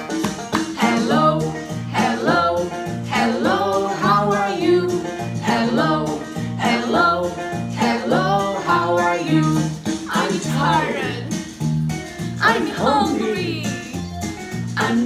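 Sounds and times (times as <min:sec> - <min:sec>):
children's song with upbeat backing: 0:00.0 - 0:15.0.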